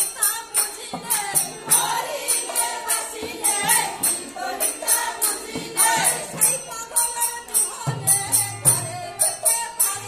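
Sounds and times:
barrel drum: 0:00.0 - 0:06.9
bright metal percussion: 0:00.0 - 0:10.0
women's group singing: 0:00.0 - 0:10.0.

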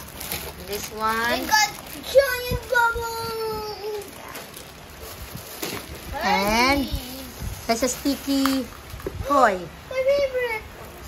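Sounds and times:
paper bag handling: 0:00.0 - 0:03.1, 0:03.8 - 0:09.1.

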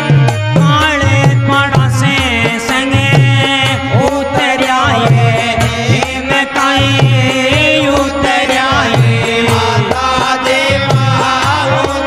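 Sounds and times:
man singing: 0:00.0 - 0:12.0
repeating drum rhythm: 0:00.0 - 0:12.0.

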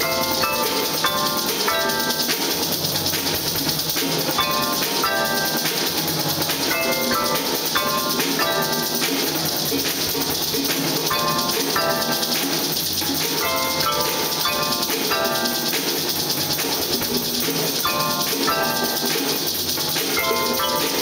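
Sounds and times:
drums and hand percussion: 0:00.0 - 0:21.0
mallet keyboard instruments: 0:00.0 - 0:21.0.

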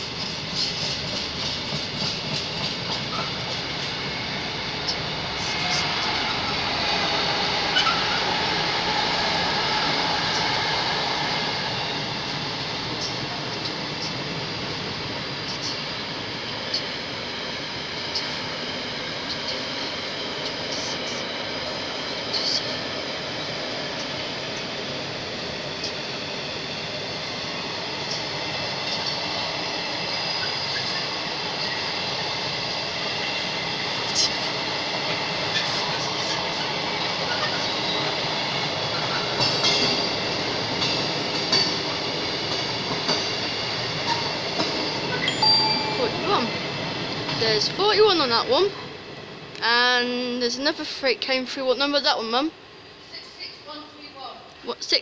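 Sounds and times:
steel wheels rumbling on rail: 0:00.0 - 0:55.0
high wheel squeal: 0:07.4 - 0:08.4, 0:29.9 - 0:31.9.

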